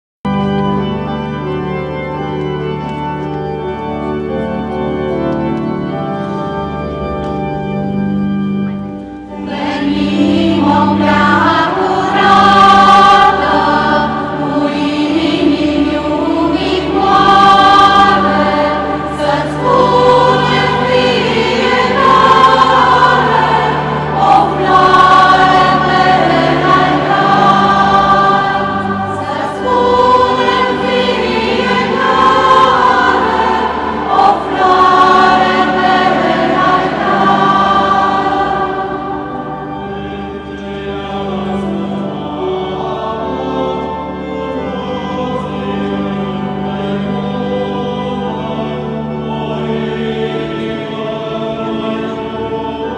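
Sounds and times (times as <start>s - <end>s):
choir singing a hymn: 0.3s - 52.9s
organ notes: 0.3s - 52.9s.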